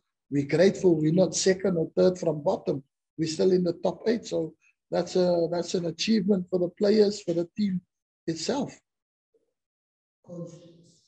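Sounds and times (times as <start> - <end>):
person speaking: 0.3 - 8.8.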